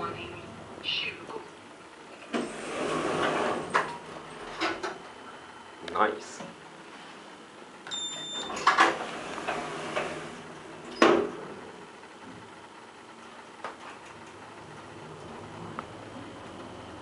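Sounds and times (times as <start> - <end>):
elevator doors sliding shut: 2.2 - 5.2, 7.9 - 11.7, 13.8 - 17.0
elevator button beep: 7.9 - 8.7
door closing thud: 10.9 - 11.4.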